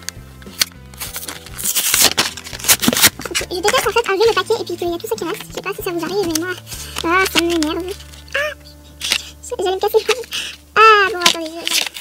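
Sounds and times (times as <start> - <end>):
background music: 0.0 - 12.0
blister packaging crackling: 0.0 - 12.0.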